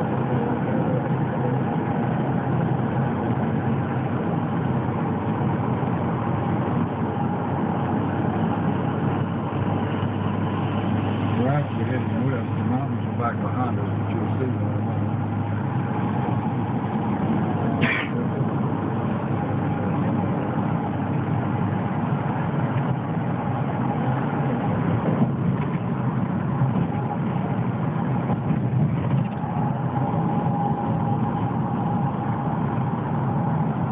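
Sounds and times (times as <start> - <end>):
road and engine noise in car: 0.0 - 33.9.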